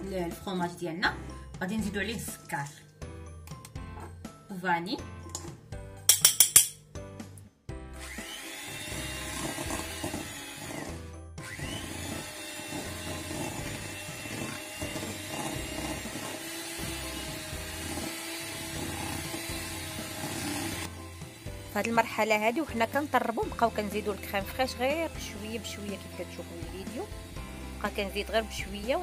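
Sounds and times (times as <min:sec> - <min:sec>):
background music: 0:00.0 - 0:29.0
electric hand mixer whine: 0:07.9 - 0:29.0.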